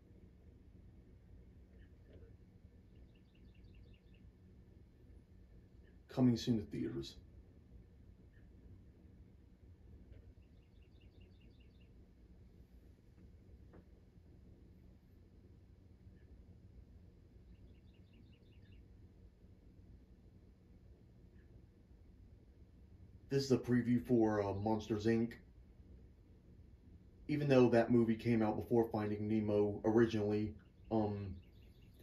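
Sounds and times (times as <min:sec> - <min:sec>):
faint high chirps: 0:01.5 - 0:06.1, 0:10.1 - 0:12.1, 0:17.4 - 0:19.2.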